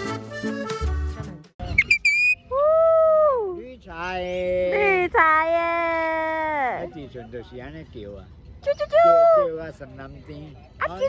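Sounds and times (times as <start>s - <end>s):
accordion music: 0.0s - 1.5s
high squeaks: 1.7s - 2.4s.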